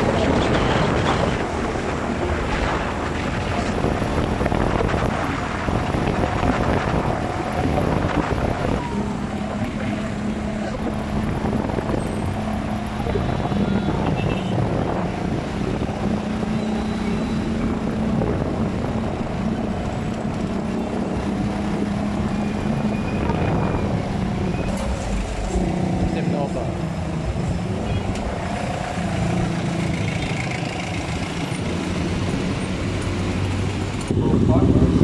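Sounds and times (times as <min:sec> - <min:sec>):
wind noise: 0:00.0 - 0:30.0, 0:31.1 - 0:35.0
road noise: 0:00.0 - 0:35.0
vehicle engine hum: 0:00.0 - 0:35.0.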